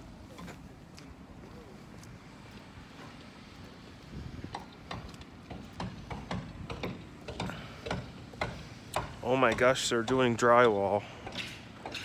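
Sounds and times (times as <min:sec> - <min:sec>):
footsteps walking: 0:00.2 - 0:06.1.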